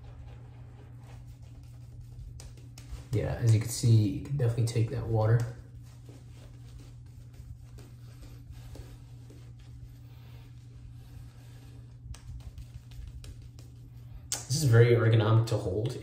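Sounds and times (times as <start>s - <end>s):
shaving brush scratchy brushing: 0.0s - 14.8s
steady low hum: 0.0s - 16.0s.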